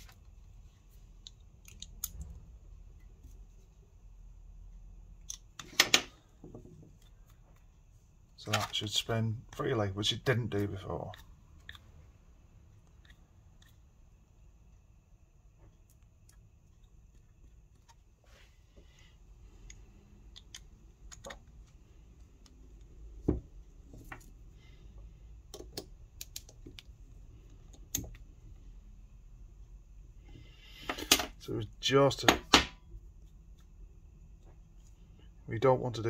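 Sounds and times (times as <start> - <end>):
metallic clicks and taps: 25.5 - 26.9.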